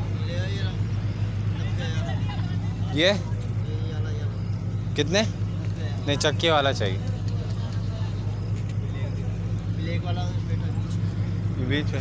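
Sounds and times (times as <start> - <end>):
engine humming: 0.0 - 12.0.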